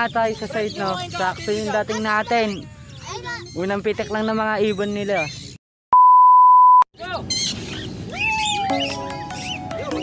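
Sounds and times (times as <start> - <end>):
test-tone beep: 6.0 - 6.8
music: 8.7 - 10.0.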